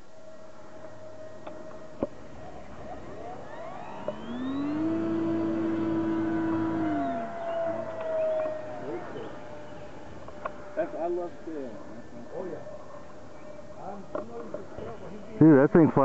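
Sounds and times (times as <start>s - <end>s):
electric ducted fan whining: 0.0s - 16.0s.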